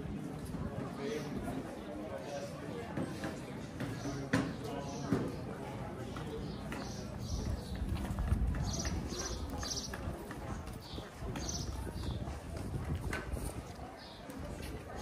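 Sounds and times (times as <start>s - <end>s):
crowd chatter: 0.0s - 15.0s
footsteps on cobblestones: 2.9s - 15.0s.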